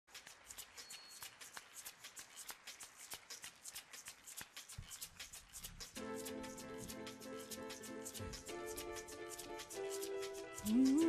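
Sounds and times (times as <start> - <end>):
crowd clapping: 0.1 - 6.0.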